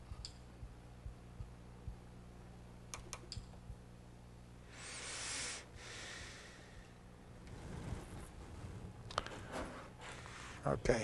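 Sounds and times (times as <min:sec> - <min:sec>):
low hum: 0:00.0 - 0:10.6
breath close to microphone: 0:04.7 - 0:06.9.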